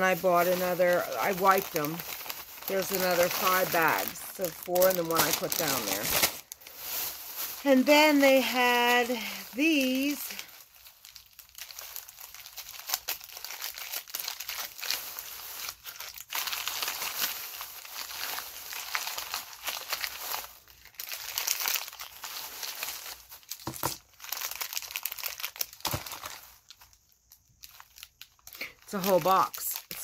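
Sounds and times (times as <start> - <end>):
snack packaging crinkling: 0.0 - 30.0.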